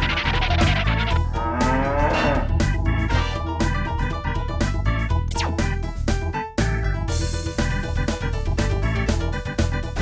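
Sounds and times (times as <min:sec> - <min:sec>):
upbeat theme music: 0:00.0 - 0:10.0
cattle mooing: 0:00.6 - 0:03.0.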